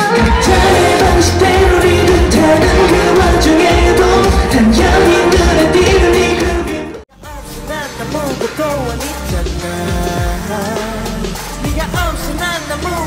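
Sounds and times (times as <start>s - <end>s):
man singing: 0.0s - 13.0s
heavy bass beat: 0.1s - 7.4s.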